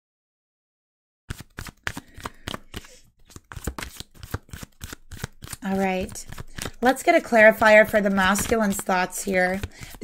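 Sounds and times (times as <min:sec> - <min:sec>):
cards being shuffled: 0:01.3 - 0:10.0.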